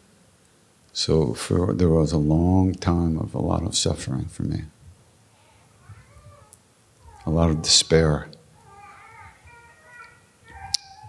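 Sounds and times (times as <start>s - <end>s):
high-pitched gliding cries: 5.3s - 11.0s.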